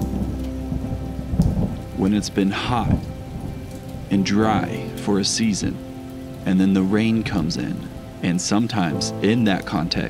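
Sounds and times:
low rumble of thunder: 0.0s - 10.0s
rain falling: 0.0s - 10.0s.

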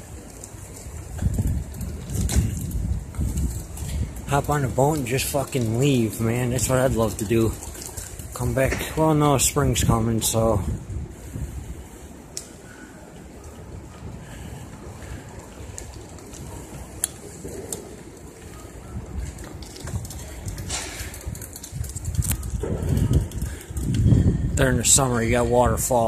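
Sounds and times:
wind buffeting microphone: 0.0s - 26.0s
faint clicks and rattles: 15.0s - 24.2s.

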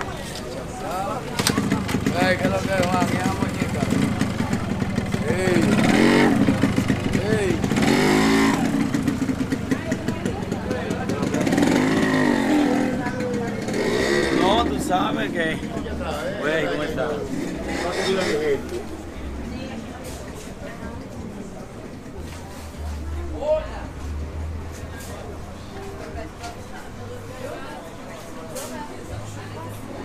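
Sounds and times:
people talking at once: 0.0s - 30.0s
small motorcycle engine running: 1.4s - 15.9s.

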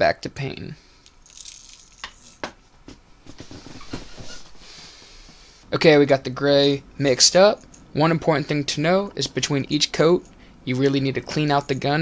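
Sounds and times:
soft rustling: 1.8s - 5.7s.

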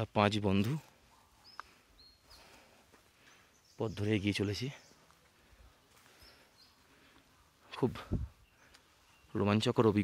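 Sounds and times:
man speaking: 0.0s - 1.0s, 3.8s - 4.9s, 7.6s - 8.3s, 9.3s - 10.0s
faint high bird chirps: 1.0s - 5.3s, 6.2s - 10.0s.

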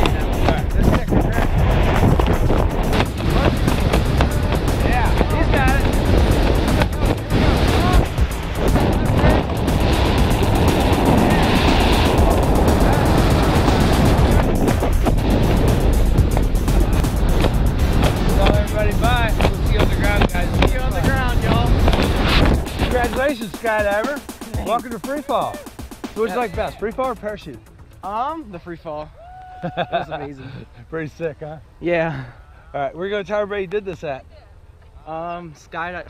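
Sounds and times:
freefall wind rushing over microphone: 0.0s - 27.4s.

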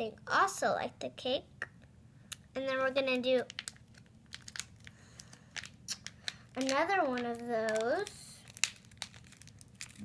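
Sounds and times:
plastic wrapper crinkling: 3.3s - 10.0s.

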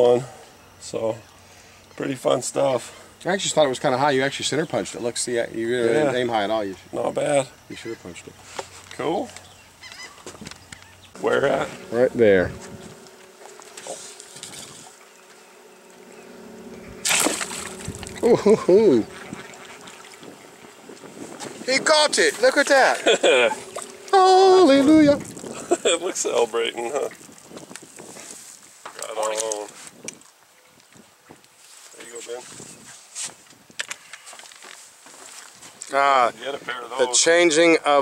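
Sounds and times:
faint steady hum: 0.0s - 29.7s
wind noise on microphone: 11.4s - 13.0s, 16.8s - 28.7s, 29.8s - 31.4s, 32.4s - 33.8s
arrow splashing into water: 17.0s - 17.6s.

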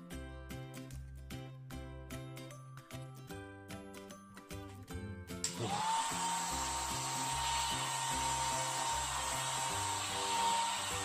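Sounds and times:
background music: 0.0s - 11.0s
hair dryer running: 5.4s - 11.0s.

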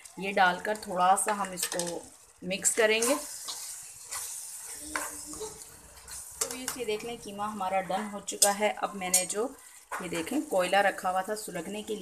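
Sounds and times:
light frying sizzle: 0.0s - 12.0s
spoon scraping mince in pan: 2.7s - 7.7s, 8.3s - 12.0s.

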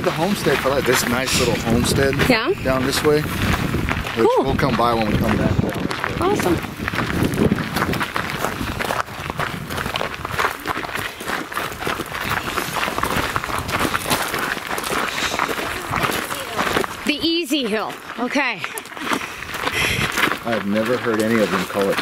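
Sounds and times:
footsteps crunching on gravel: 0.0s - 22.0s.

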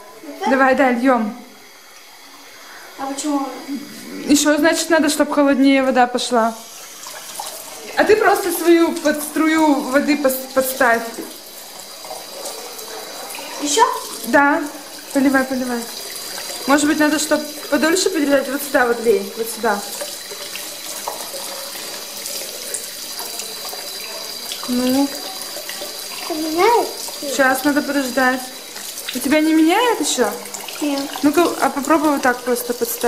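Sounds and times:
tap running water into sink: 1.0s - 33.0s.

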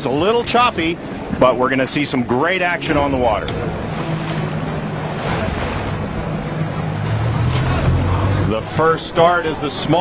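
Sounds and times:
boat engine humming: 0.0s - 10.0s
choppy water: 0.0s - 10.0s
wind: 0.0s - 10.0s.

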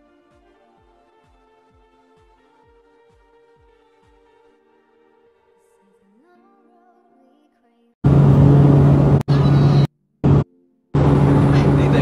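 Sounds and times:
aircraft cabin engine drone: 8.0s - 10.4s, 11.0s - 12.0s.

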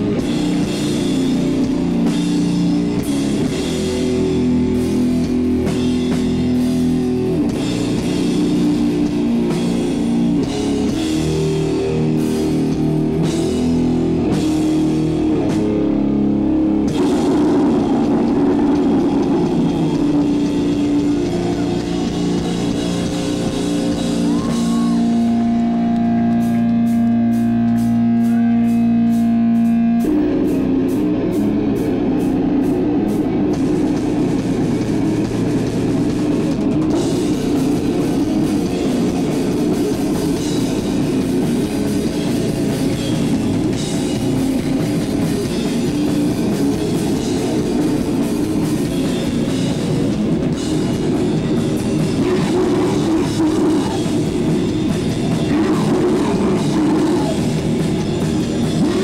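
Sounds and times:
metal band playing live: 0.0s - 59.0s.

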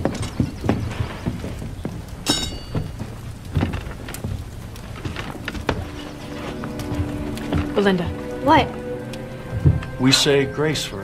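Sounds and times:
footsteps on wooden floor: 0.0s - 10.0s.

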